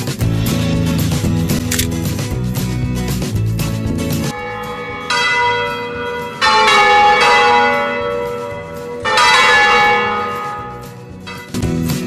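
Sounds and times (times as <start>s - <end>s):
bell ringing: 4.4s - 11.4s.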